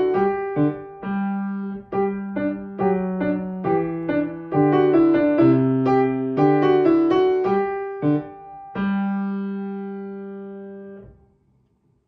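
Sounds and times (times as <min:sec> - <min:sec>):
grand piano chords: 0:00.0 - 0:11.4.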